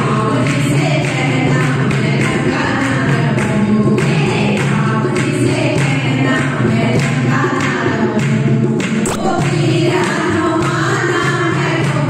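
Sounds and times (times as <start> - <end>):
women singing through microphones: 0.0 - 12.0
steady percussive beat: 8.9 - 10.8.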